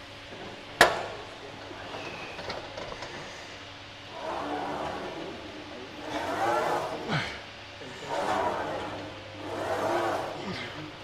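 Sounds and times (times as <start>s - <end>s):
gym background noise: 0.3s - 11.0s.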